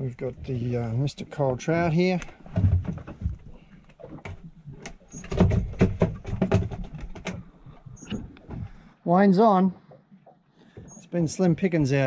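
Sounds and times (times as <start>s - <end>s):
handling knocks and rubbing: 0.1s - 8.8s.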